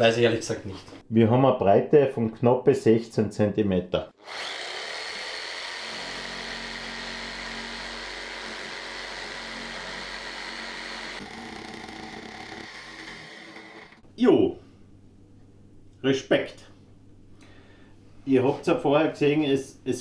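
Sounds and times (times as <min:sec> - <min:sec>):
jigsaw sawing through wood: 0:04.2 - 0:14.0.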